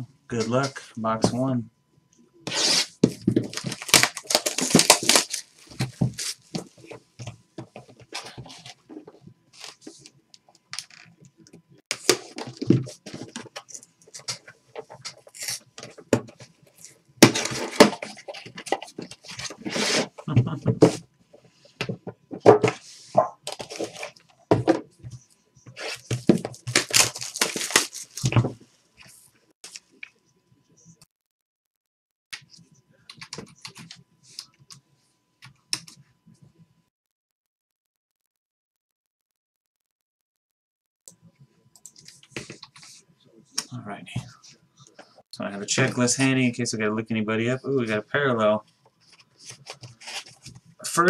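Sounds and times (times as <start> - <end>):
plastic wrapping crinkling and tearing: 3.4 - 6.6, 25.8 - 28.4.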